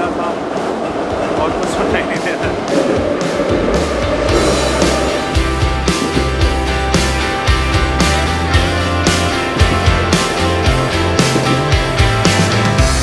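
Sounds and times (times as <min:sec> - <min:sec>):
metro train ride noise: 0:00.0 - 0:13.0
music with guitar and beat: 0:02.5 - 0:13.0.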